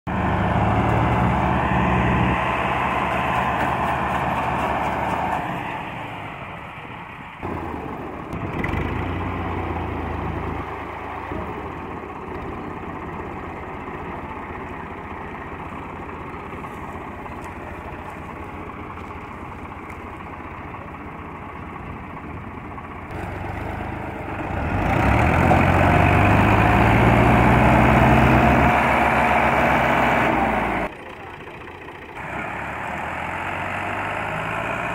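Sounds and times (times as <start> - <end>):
tractor diesel engines running: 0.0 - 34.9.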